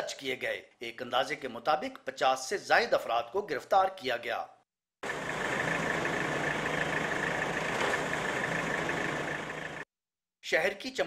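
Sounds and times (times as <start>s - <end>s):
vehicle engine running: 5.0s - 9.9s.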